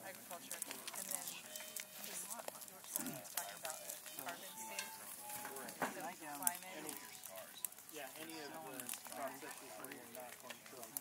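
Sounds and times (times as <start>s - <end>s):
campfire crackling: 0.0s - 11.0s
sharp pops from burning logs: 0.0s - 11.0s.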